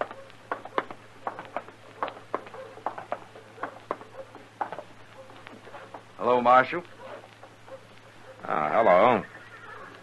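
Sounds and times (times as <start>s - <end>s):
footsteps on hard surface: 0.0s - 7.8s.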